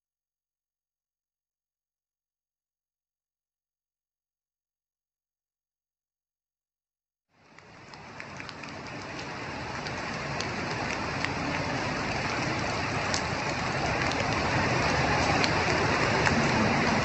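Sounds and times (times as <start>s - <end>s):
rain falling steadily: 7.3s - 17.0s.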